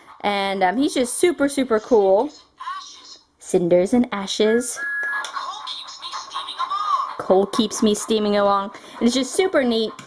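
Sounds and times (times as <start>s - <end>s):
toy recorded speech: 1.6s - 3.3s, 5.0s - 10.0s
tinny electronic toy tune: 4.8s - 5.3s.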